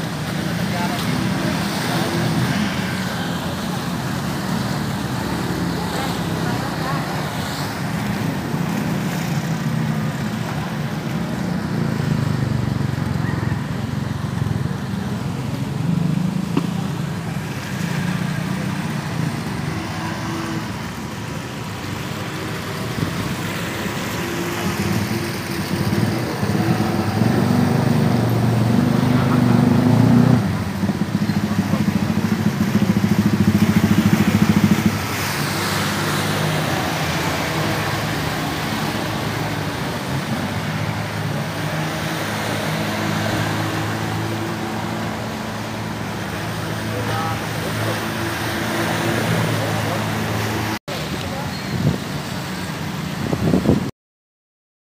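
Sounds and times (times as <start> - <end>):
outboard motors running: 0.1 - 53.1.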